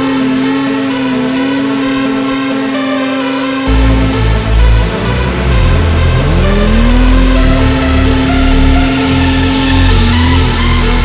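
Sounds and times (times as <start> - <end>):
electronic music: 0.0 - 11.0
snowmobile engine at high revs: 0.0 - 11.0.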